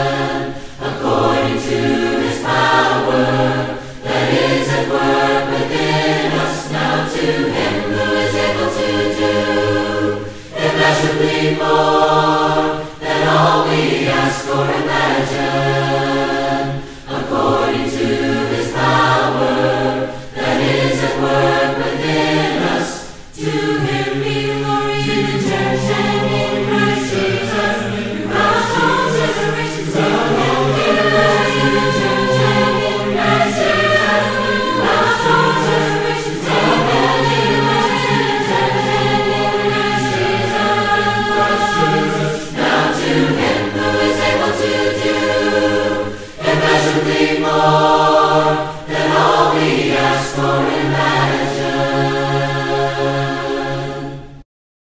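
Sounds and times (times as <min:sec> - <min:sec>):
mixed choir singing a cappella: 0:00.0 - 0:54.4.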